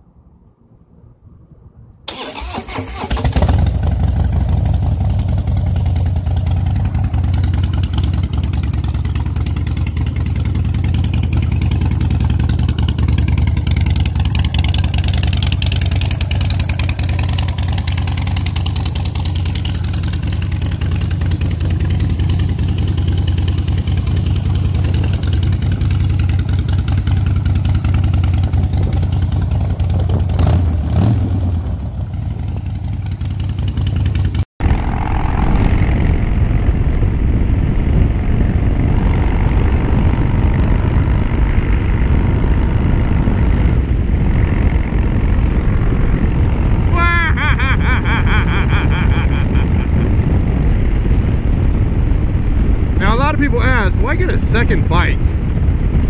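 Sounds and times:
motorcycle engine starting and idling: 2.1 - 50.0.

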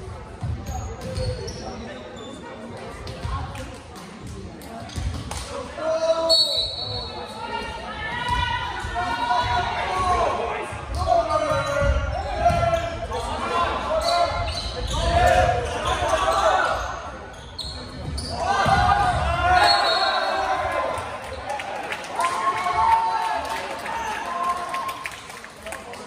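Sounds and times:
players shouting: 18.2 - 24.8.

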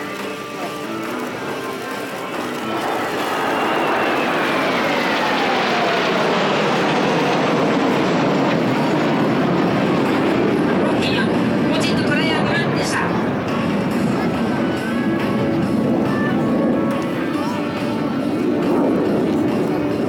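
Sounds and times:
falling jet whine: 0.0 - 20.0
jet engines flying past: 0.0 - 20.0.

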